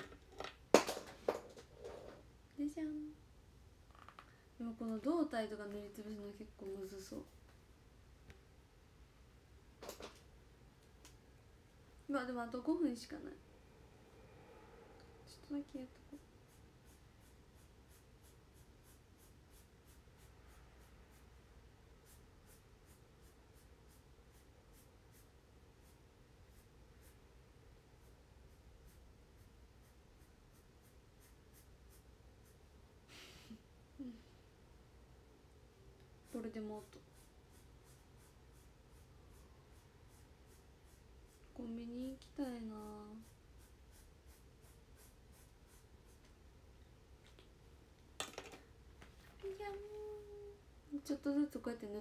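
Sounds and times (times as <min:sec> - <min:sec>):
low room hum: 0:00.0 - 0:52.0
pen strokes on paper: 0:15.9 - 0:32.7, 0:36.2 - 0:46.4.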